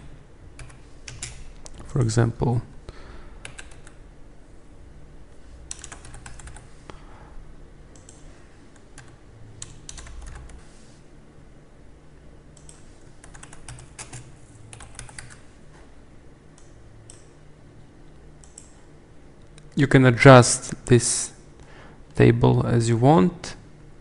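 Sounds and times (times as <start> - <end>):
faint low hum: 0.0 - 24.0
keyboard keystroke clicks: 18.4 - 18.8.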